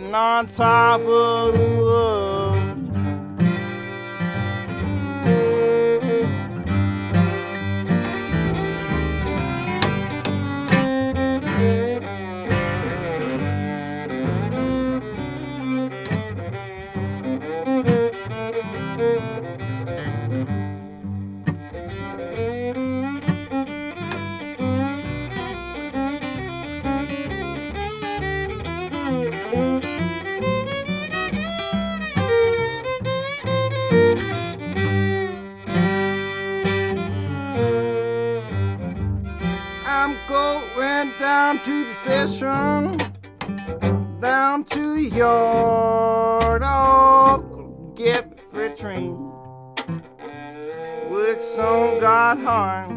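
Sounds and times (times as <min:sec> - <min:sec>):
bowed fiddle with sliding notes: 0:00.0 - 0:52.9
plucked upright bass: 0:00.0 - 0:52.9
strummed acoustic guitar: 0:00.0 - 0:52.9.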